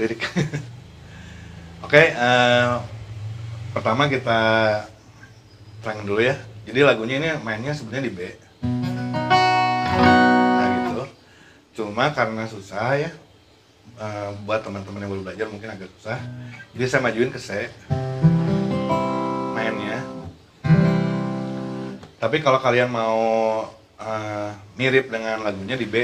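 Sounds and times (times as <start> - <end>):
acoustic guitar chord strummed: 8.6 - 11.1, 16.2 - 17.1, 17.8 - 22.2.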